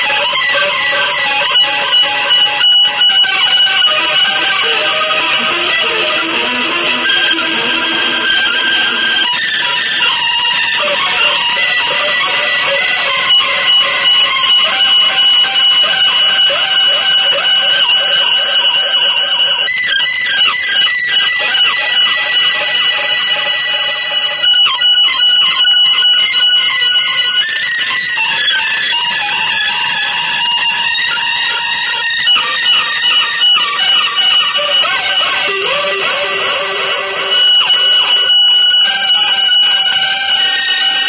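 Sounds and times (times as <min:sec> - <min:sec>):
sliding bending guitar pitches: 0:00.0 - 0:41.0
sustained electric guitar tones: 0:00.0 - 0:41.0.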